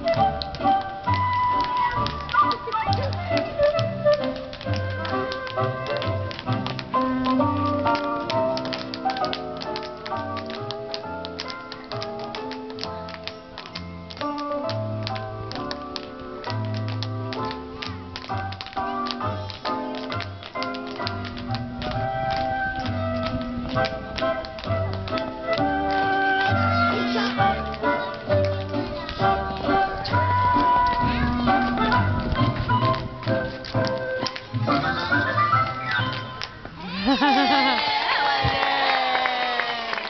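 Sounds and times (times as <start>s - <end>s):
music with melody and bass: 0.0s - 36.6s
tap shoes clicking on stage floor: 0.0s - 40.0s.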